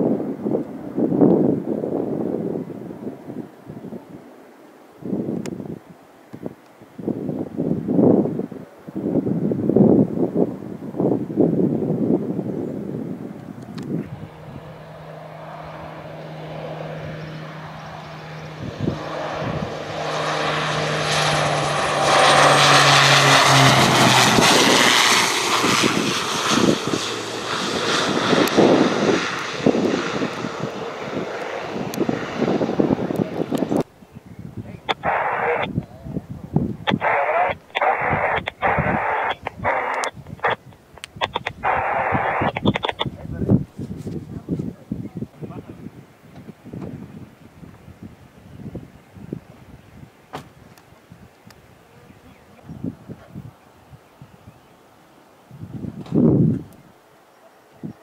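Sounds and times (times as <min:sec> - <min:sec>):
wind buffeting microphone: 0:00.0 - 0:04.2, 0:05.0 - 0:54.8, 0:55.5 - 0:57.0
propeller airplane passing low: 0:06.8 - 0:58.0.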